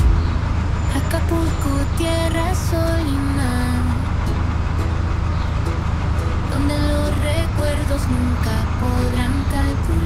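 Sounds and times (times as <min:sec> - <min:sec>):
car rumbling in traffic: 0:00.0 - 0:10.0.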